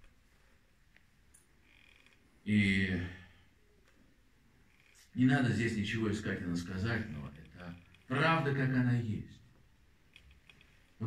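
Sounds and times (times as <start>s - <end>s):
faint clicks: 9.6s - 11.0s.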